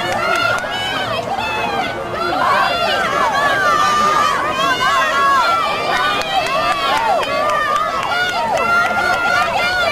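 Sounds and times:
spectators yelling and cheering: 0.0s - 9.9s.

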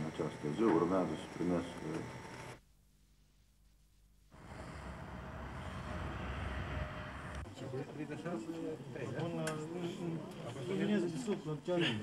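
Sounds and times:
road traffic rumble: 4.4s - 7.5s.

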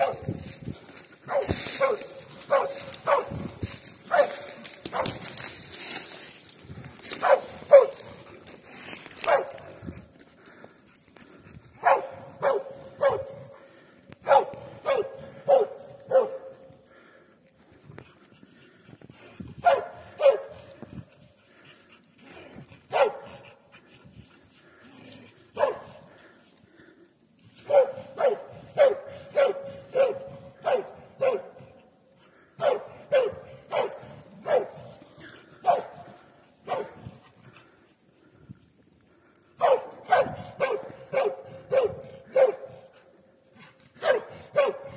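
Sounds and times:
dog barking: 0.0s - 0.4s, 1.3s - 3.4s, 4.1s - 5.2s, 7.2s - 8.3s, 9.2s - 9.7s, 11.8s - 13.4s, 14.2s - 16.6s, 19.6s - 20.6s, 22.9s - 23.4s, 25.6s - 26.0s, 27.6s - 31.7s, 32.6s - 34.9s, 35.6s - 37.1s, 39.6s - 42.9s, 44.0s - 44.9s.

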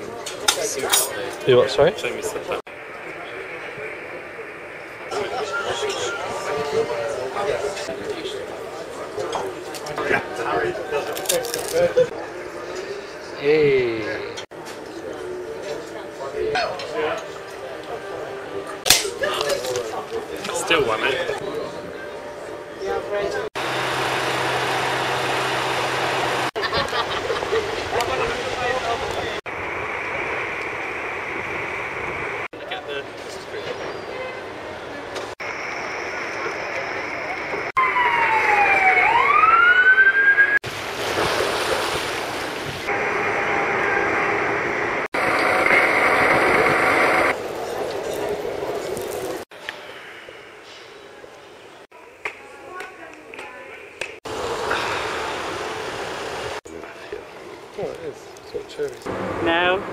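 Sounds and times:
city ambience: 0.0s - 59.9s.

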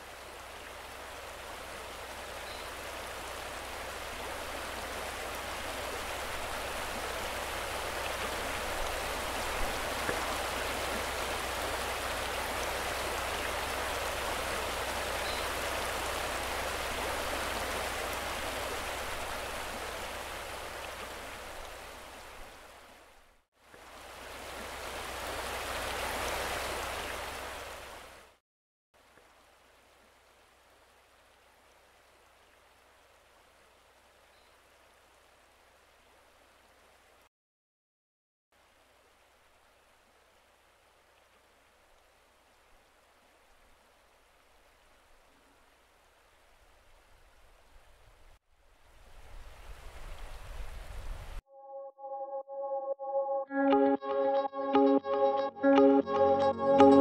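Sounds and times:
rushing river water: 0.0s - 28.4s, 38.6s - 51.4s.

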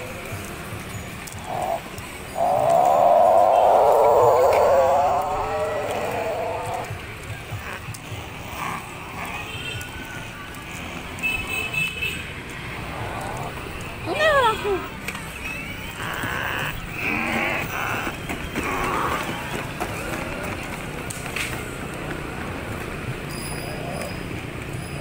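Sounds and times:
scattered quiet sounds: 0.0s - 22.7s
wavering voice-like cry: 1.4s - 7.0s, 13.0s - 19.4s.

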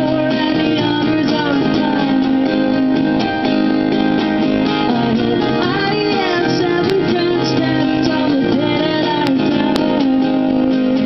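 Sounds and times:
acoustic guitars strummed: 0.0s - 11.0s.

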